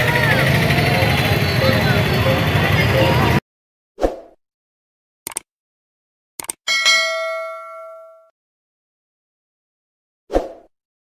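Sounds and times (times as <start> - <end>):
cursor clicking: 5.3 - 5.5, 6.4 - 6.6
bell ding: 6.7 - 8.3.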